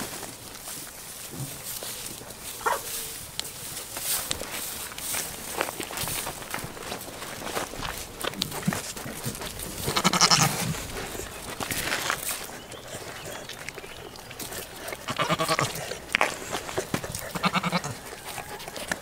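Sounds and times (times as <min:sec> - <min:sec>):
goat bleating: 0:09.8 - 0:10.7, 0:15.0 - 0:15.9, 0:17.2 - 0:18.4.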